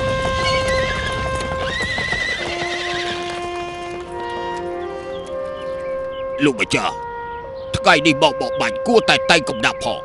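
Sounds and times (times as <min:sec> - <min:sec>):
horse whinnying: 0:00.4 - 0:03.6
background music with held notes: 0:02.6 - 0:10.0.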